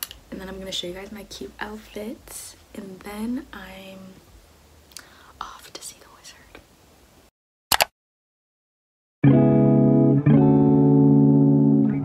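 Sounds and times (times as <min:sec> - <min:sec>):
woman whispering: 0:05.2 - 0:06.6.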